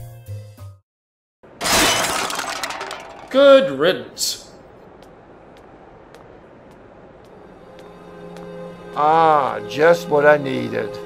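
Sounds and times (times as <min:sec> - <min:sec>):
glass shattering with clattering debris: 0:01.6 - 0:03.5.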